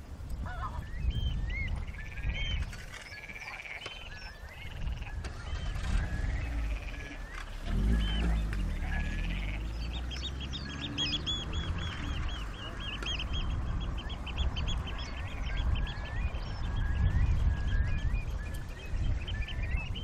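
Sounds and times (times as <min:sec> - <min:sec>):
birds calling with whistled notes: 0:00.0 - 0:20.0
low rumble: 0:04.6 - 0:20.0.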